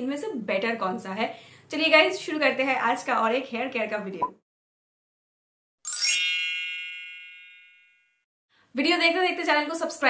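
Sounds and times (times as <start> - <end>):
bright chime ringing: 5.9 - 8.2.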